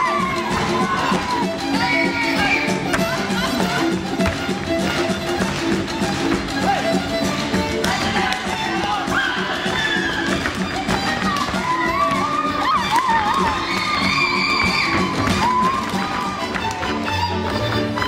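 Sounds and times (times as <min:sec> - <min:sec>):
folk dance music: 0:00.0 - 0:18.0
voices shouting and whooping: 0:11.6 - 0:16.2.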